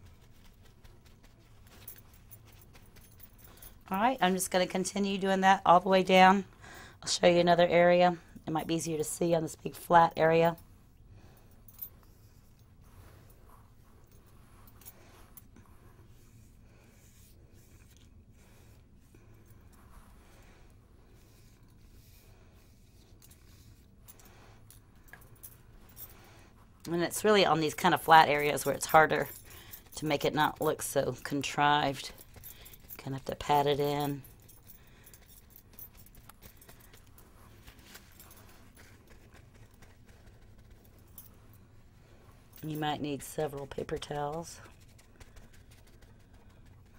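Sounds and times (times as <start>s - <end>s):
paintbrush strokes: 0.0s - 2.9s, 12.0s - 46.9s.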